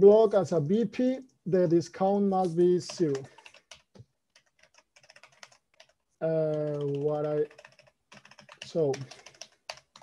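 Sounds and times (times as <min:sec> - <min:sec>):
keyboard typing clicks: 0:02.8 - 0:10.0.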